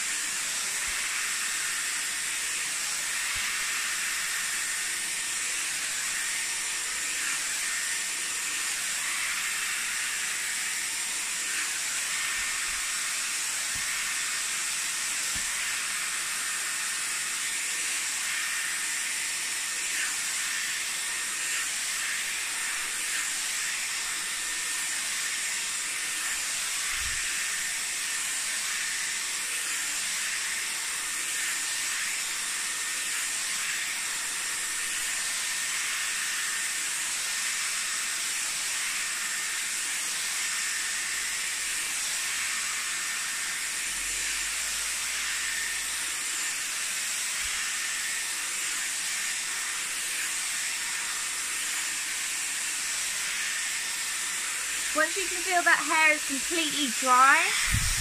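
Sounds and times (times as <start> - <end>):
hair styler blowing air: 0.0 - 58.0.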